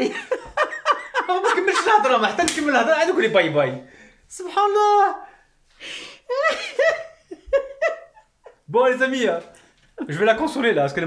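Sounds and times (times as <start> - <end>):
woman laughing: 0.0 - 2.3, 6.3 - 8.6.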